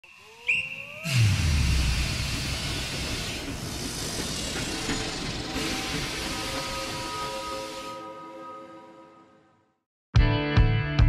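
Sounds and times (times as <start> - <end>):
rising whistle-like tones: 0.0 - 9.3
deep falling boom: 1.1 - 2.8
loud rushing whoosh: 1.1 - 3.7.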